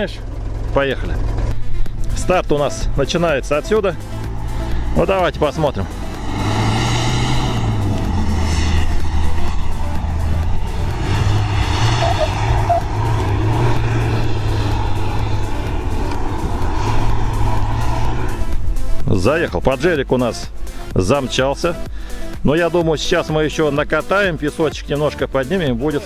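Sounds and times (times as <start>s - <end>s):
engine running hard under load: 0.0s - 19.9s.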